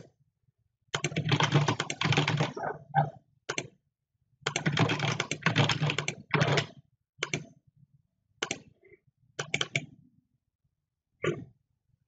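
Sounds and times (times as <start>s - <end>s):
rapid typing on keyboard: 1.0s - 2.6s, 4.5s - 7.4s.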